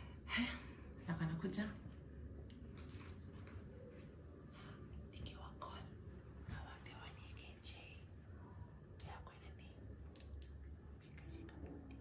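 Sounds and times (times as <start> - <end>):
low room hum: 0.0 - 12.0
woman whispering: 4.6 - 8.2, 9.0 - 9.9, 11.0 - 12.0.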